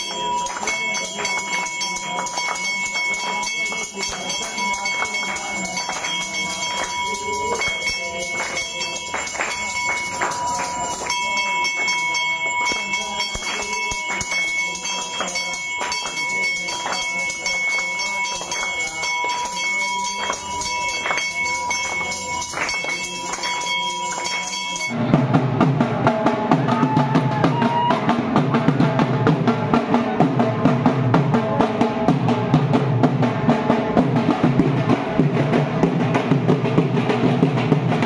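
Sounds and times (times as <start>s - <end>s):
people clapping in time: 0.0s - 25.0s
bell ringing steadily: 0.0s - 25.1s
group singing: 0.0s - 32.1s.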